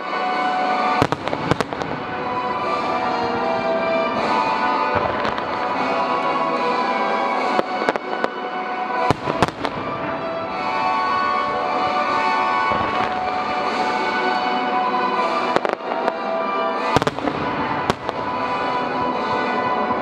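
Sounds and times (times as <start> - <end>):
music: 0.0 - 20.0
firework shells bursting: 9.0 - 14.0.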